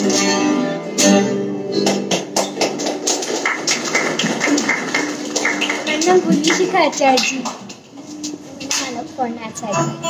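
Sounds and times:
taps and knocks on acoustic guitars: 0:00.0 - 0:07.8
low voices: 0:04.0 - 0:09.9.

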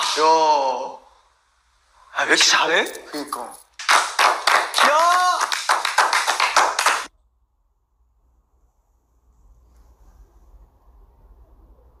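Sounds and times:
group clapping fast: 0:03.8 - 0:07.1
person shouting: 0:04.8 - 0:05.6.

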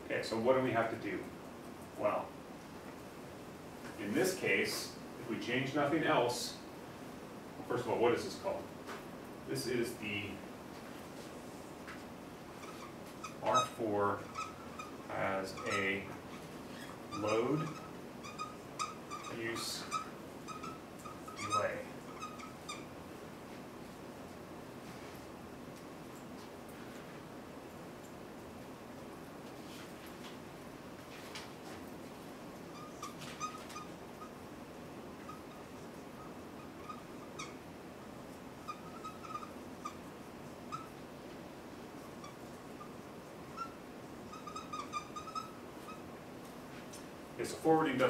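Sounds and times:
marker squeaking on whiteboard: 0:12.5 - 0:23.0, 0:32.6 - 0:34.4, 0:35.1 - 0:37.7, 0:38.6 - 0:41.1, 0:42.1 - 0:46.1.

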